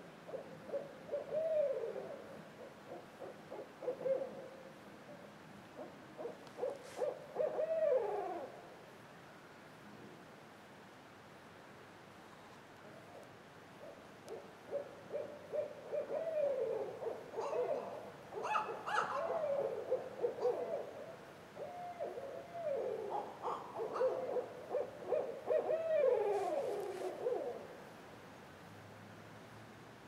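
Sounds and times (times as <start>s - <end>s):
owls hooting: 0.3s - 4.5s, 5.8s - 8.6s, 14.3s - 27.7s.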